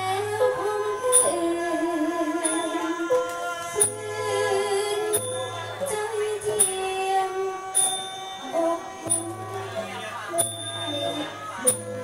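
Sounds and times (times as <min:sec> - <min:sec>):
music: 0:00.0 - 0:12.0
person singing long notes: 0:00.0 - 0:12.0.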